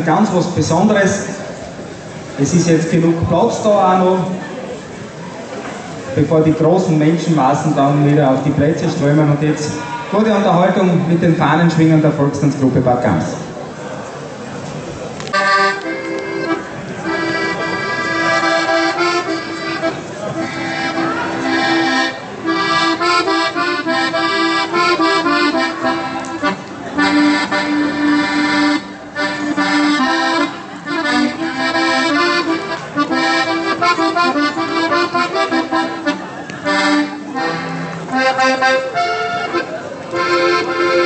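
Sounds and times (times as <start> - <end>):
accordion playing folk tune: 0.0 - 4.4, 6.2 - 12.7, 15.2 - 41.0.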